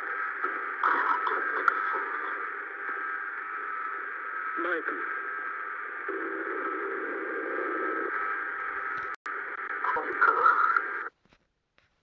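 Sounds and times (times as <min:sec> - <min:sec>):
narrowband radio hiss: 0:00.0 - 0:11.2.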